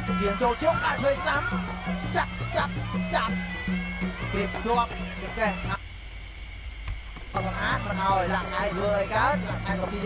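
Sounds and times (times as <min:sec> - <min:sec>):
commentator speaking: 0:00.0 - 0:03.6, 0:04.2 - 0:05.8, 0:07.4 - 0:10.0
live boxing music: 0:00.0 - 0:05.8.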